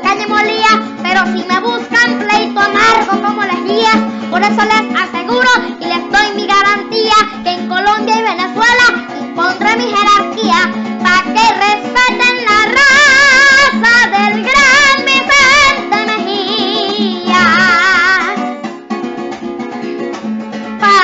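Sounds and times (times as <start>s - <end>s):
boy singing into a microphone: 0.0s - 18.4s, 20.8s - 21.0s
plucked string accompaniment: 0.0s - 21.0s.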